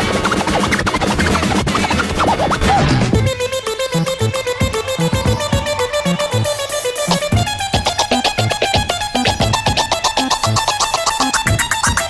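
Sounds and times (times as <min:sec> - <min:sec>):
vinyl record scratching: 0:00.0 - 0:03.3, 0:07.0 - 0:12.0
steady beat: 0:00.0 - 0:12.0.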